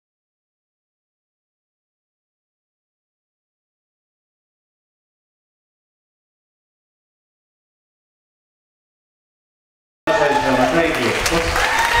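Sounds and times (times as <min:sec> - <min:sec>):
audience applauding: 0:10.1 - 0:12.0
people cheering and calling out: 0:10.1 - 0:12.0.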